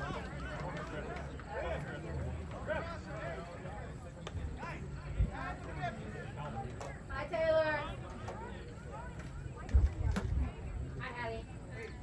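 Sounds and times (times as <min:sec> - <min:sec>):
low outdoor background: 0:00.0 - 0:12.0.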